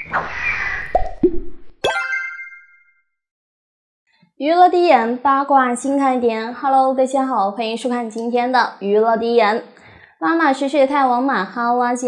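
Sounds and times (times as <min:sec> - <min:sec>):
pops sliding upward in pitch: 0:00.0 - 0:02.8
bright ringing chime: 0:01.9 - 0:03.0.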